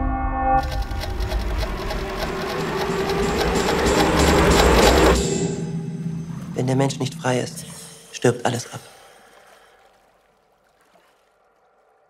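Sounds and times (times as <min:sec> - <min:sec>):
low rumble: 0:00.0 - 0:08.5
rapid mechanical rattle: 0:00.6 - 0:05.4
noise riser: 0:00.6 - 0:08.0.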